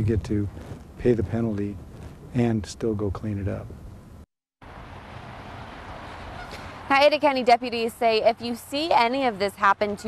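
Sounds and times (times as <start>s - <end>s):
outdoor background hiss: 0.0s - 10.0s
woman's voice: 6.9s - 10.0s.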